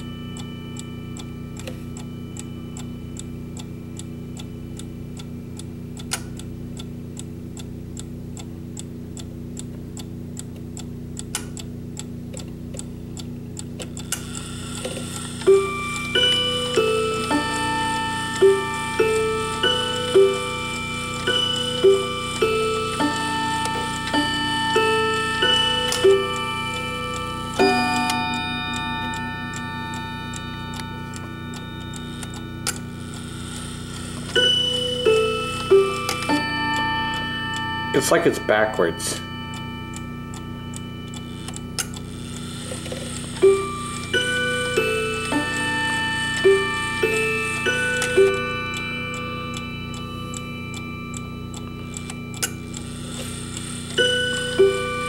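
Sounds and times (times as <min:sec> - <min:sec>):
clock chime melody: 0:00.0 - 0:09.6, 0:13.1 - 0:55.0
deep clock strike: 0:00.0 - 0:42.6, 0:43.4 - 0:55.0
clock ticking: 0:00.0 - 0:55.0.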